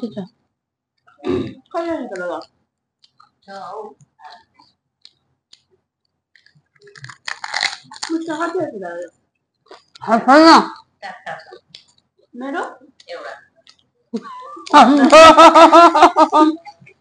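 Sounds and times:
crunchy food being chewed: 2.4 - 3.5, 4.3 - 8.3, 9.5 - 10.1
person speaking: 9.7 - 11.8, 14.2 - 17.0.

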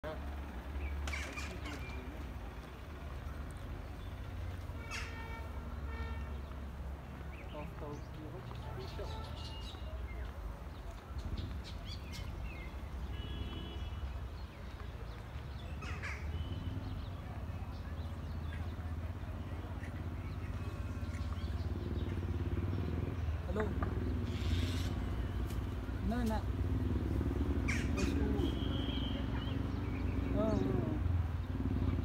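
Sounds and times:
birds chirping: 0.0 - 32.0
engine humming: 0.0 - 32.0.

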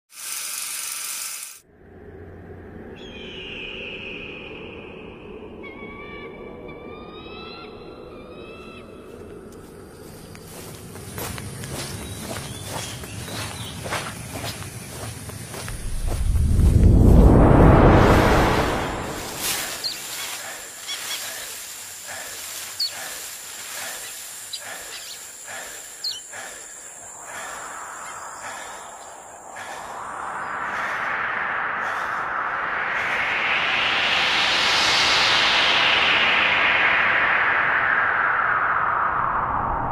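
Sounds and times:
low rumbling ambience: 1.6 - 39.9
bird chirps: 3.0 - 5.0, 11.7 - 15.6, 19.6 - 30.9
forest background hiss: 7.2 - 38.8
loud burst of hiss: 18.1 - 31.2.

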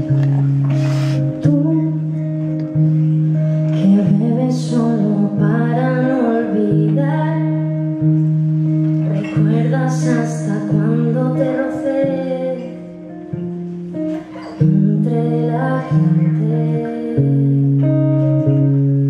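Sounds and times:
guitar playing held chords: 0.0 - 19.0
woman singing: 1.2 - 3.0, 3.6 - 8.4, 9.1 - 13.6, 14.4 - 18.8.

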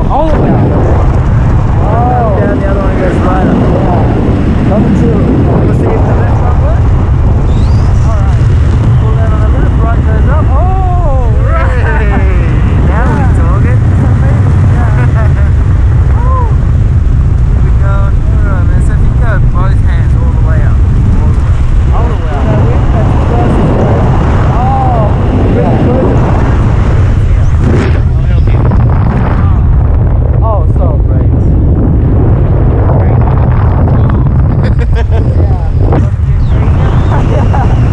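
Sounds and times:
wind buffeting microphone: 0.0 - 37.9.

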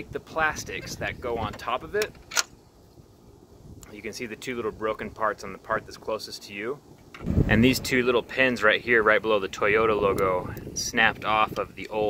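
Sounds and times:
faint low background noise: 0.0 - 12.0
sharp click: 2.0 - 2.6.

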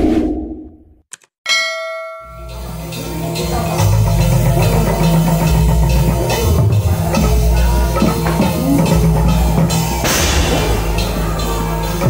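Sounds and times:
bright metallic ding: 1.5 - 2.7
music with drums and heavy bass: 2.4 - 12.0.

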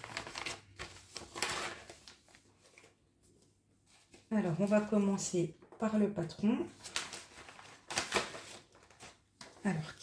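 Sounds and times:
plastic packaging crinkling: 0.0 - 2.9, 6.7 - 9.7.

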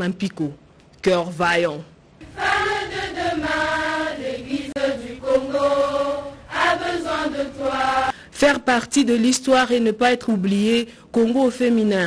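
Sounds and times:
girls choir singing: 2.2 - 8.2.

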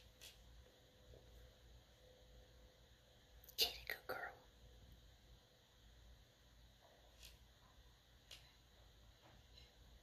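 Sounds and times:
person whispering: 3.5 - 4.5.

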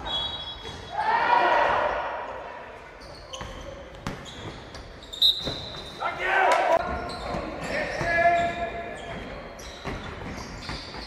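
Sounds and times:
sneaker squeak: 0.0 - 0.9, 2.8 - 6.1, 6.8 - 11.0
ball bouncing on wooden court: 3.3 - 5.9.

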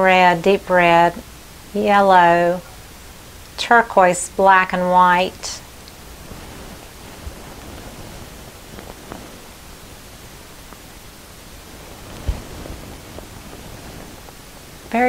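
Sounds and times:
room noise hiss: 0.0 - 15.0.

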